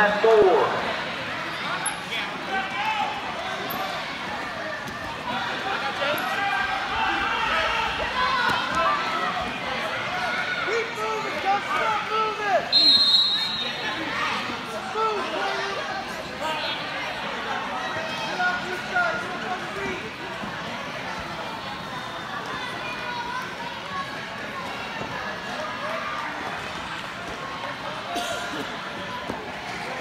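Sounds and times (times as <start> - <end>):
spectators shouting and talking: 0.0 - 30.0
high whistle-like tone: 12.8 - 13.8.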